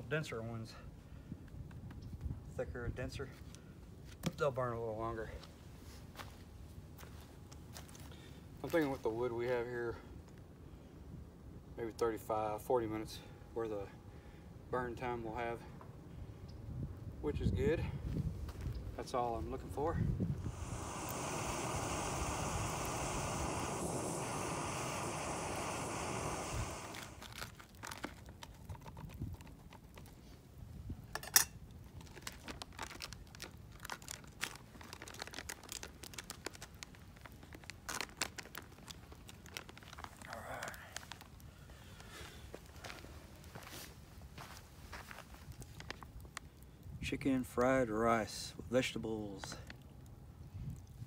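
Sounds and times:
steady rushing noise: 19.7 - 27.3
foil pouch crinkling: 27.2 - 30.2, 31.9 - 43.6.

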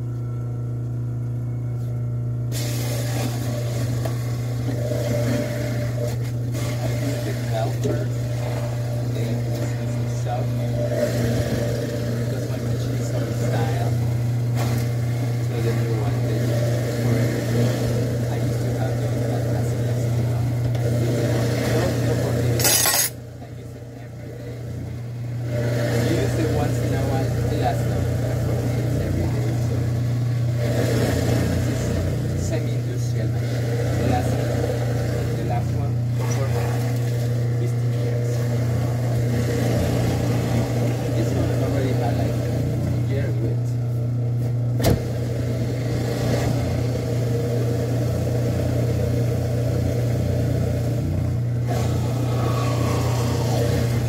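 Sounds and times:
juicer motor humming: 0.0 - 54.0.

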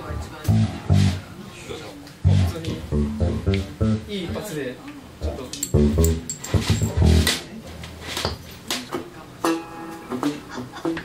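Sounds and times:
faint band instruments: 0.0 - 11.0.

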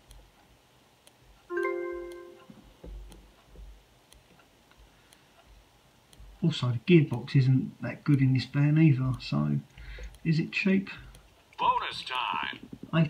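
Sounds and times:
faint ticks: 0.0 - 11.6
electronic piano-like chime: 1.5 - 2.5.

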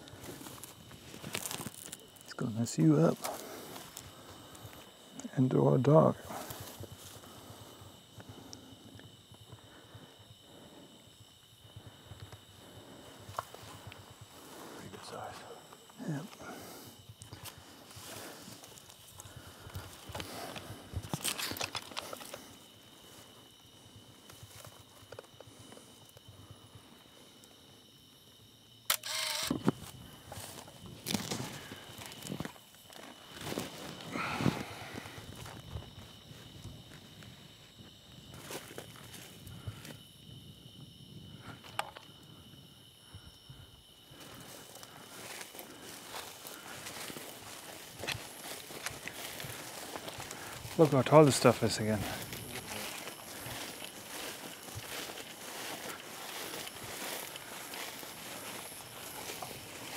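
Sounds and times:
footsteps in dry stubble: 0.0 - 10.5, 11.1 - 27.6, 29.0 - 40.8, 43.4 - 59.9.

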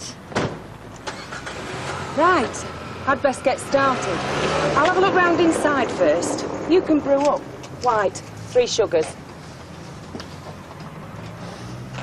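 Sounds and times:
car engine starting and running: 0.2 - 12.0.

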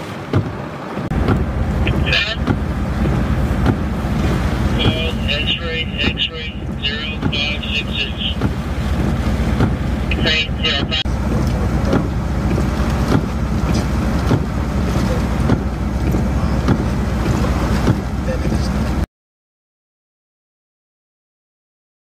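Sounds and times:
strong storm wind: 0.0 - 19.0
heavy rain: 0.0 - 19.1.

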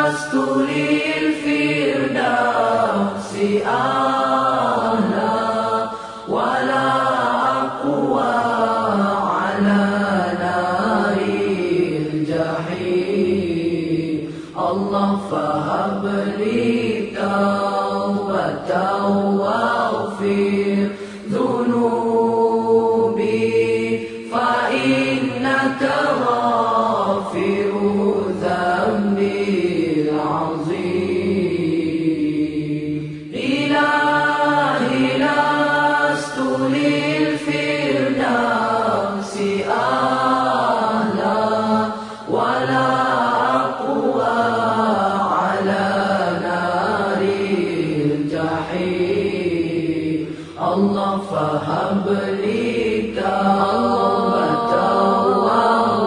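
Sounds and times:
voices singing devotional song: 0.0 - 56.0.

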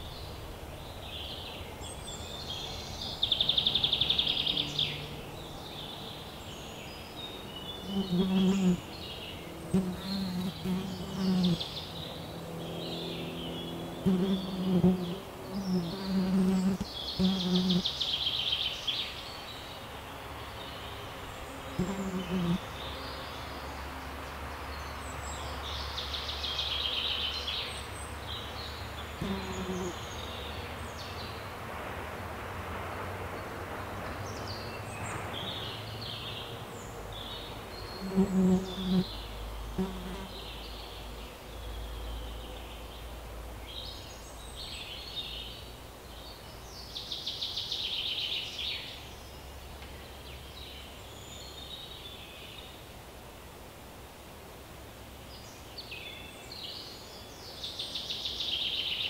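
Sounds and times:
flying insect buzzing: 7.9 - 8.8, 9.7 - 11.7, 14.0 - 17.9, 21.8 - 22.6, 29.2 - 30.0, 38.0 - 39.1, 39.8 - 40.4.

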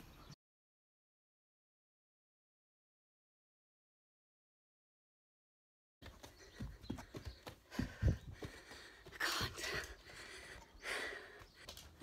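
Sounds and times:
hard out-of-breath breathing: 6.0 - 12.0
bare feet thudding on carpeted stairs: 6.6 - 8.9.

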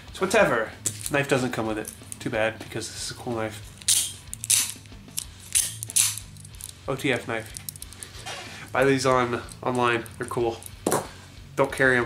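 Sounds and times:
knife blade snapping out: 3.8 - 6.4.

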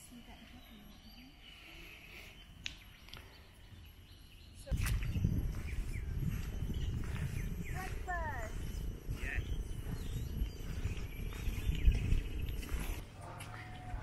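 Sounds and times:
wind buffeting microphone: 4.7 - 14.0.

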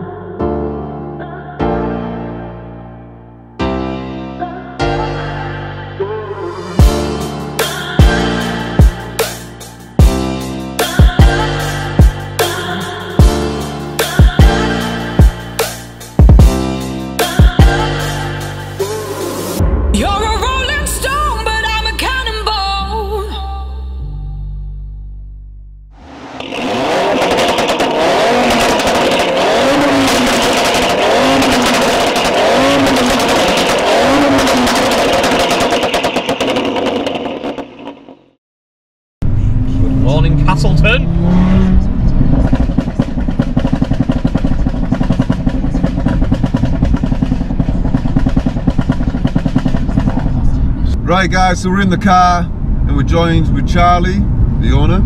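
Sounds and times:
car engine revving: 25.9 - 38.3, 39.2 - 54.8
exhaust crackling: 26.0 - 38.2, 39.2 - 54.8.

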